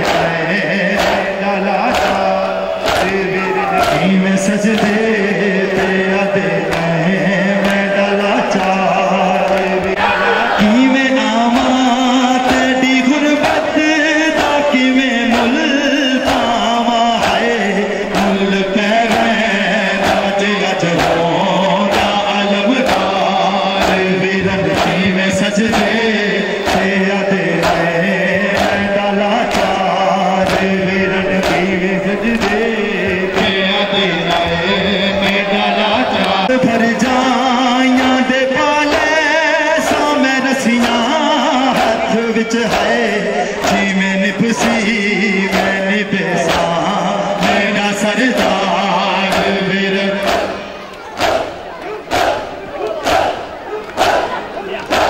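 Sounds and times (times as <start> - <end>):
hands slapping chests: 0.0 - 1.3, 1.9 - 3.2, 26.6 - 26.9, 28.5 - 28.8, 29.4 - 29.8, 30.4 - 30.7, 32.3 - 32.6, 50.2 - 55.0
man chanting a lament: 0.0 - 55.0
rhythmic chest-beating: 0.0 - 55.0.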